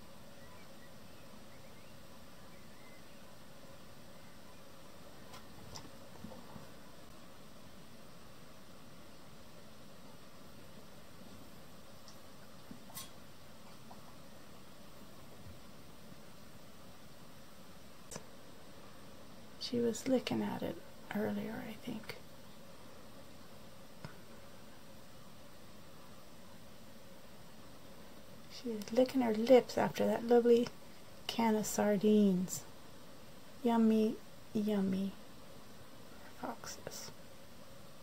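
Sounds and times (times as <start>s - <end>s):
outdoor background hiss: 0.0s - 38.0s.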